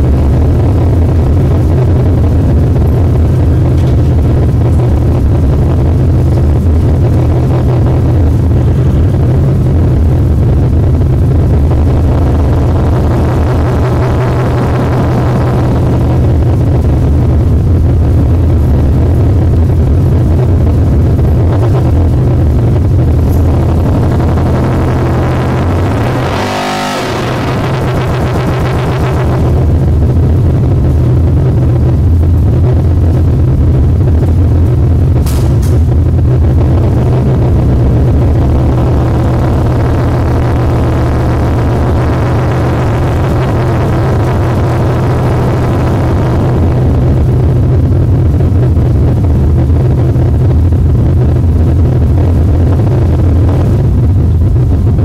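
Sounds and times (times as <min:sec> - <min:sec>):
distorted static noise: 0:00.0 - 0:55.0
heavy low rumble: 0:00.0 - 0:55.0.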